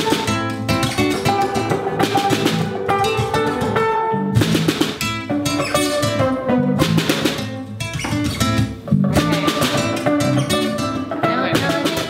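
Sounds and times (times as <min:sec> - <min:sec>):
drum kit: 0:00.0 - 0:12.0
guitars picking repeated figures: 0:00.0 - 0:12.0
live band playing afrobeat groove: 0:00.0 - 0:12.0.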